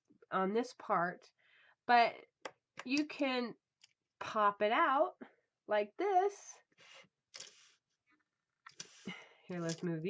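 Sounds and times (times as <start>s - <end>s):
paintbrushes scraping rustle: 7.4s - 8.1s, 8.7s - 10.0s.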